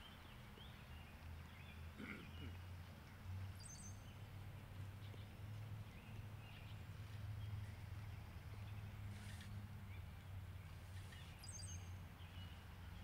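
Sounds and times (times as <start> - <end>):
birds chirping: 3.6 - 4.2, 5.0 - 13.0.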